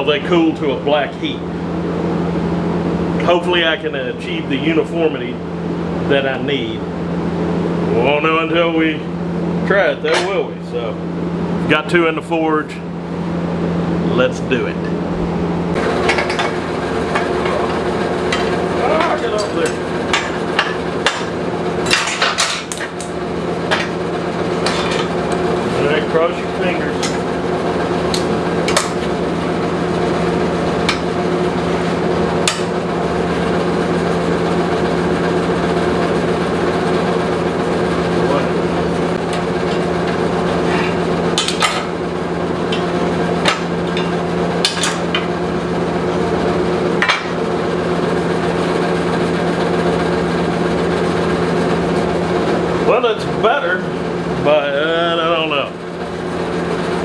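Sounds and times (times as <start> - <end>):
machine hum: 0.0 - 57.0.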